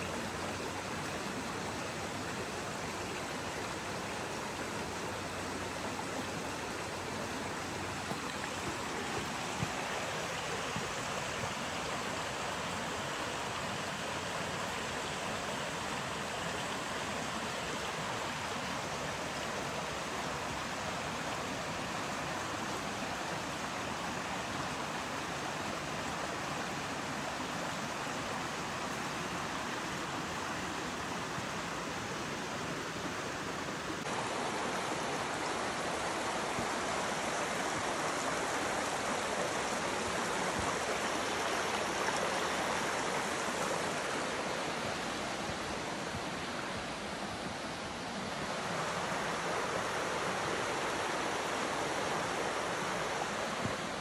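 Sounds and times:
creek water rushing: 0.0 - 54.0.

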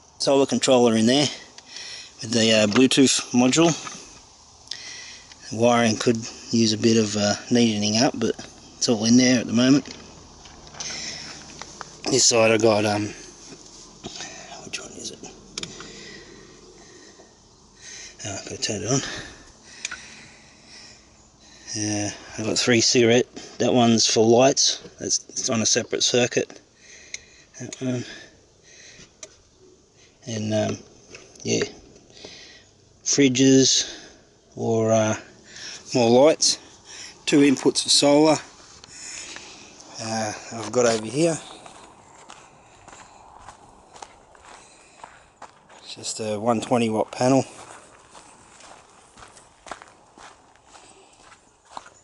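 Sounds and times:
background hiss: 0.0 - 52.0
footsteps on dry grass: 36.6 - 52.0.

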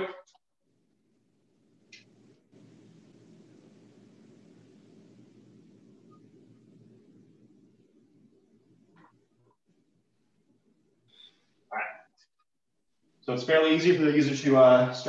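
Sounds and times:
low hum with hiss: 0.0 - 15.0.

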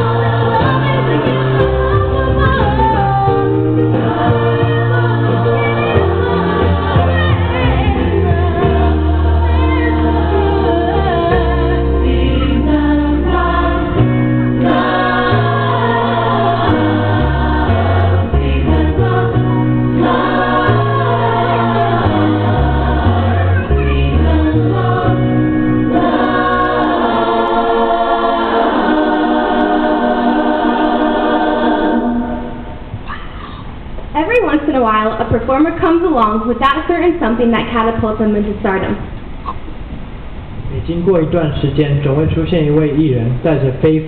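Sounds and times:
group singing in harmony: 0.0 - 33.0.

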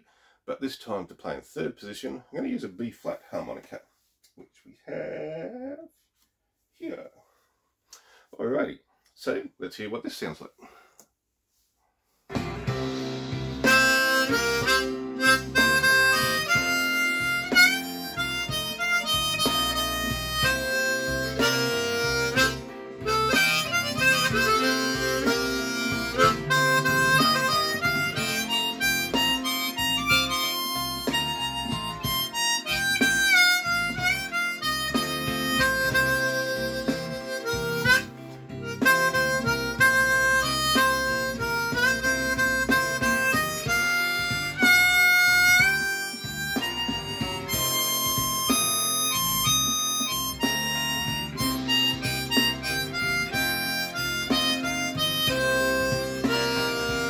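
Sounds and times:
blues guitar backing track: 12.3 - 57.0
harmonica blues line: 12.3 - 57.0.

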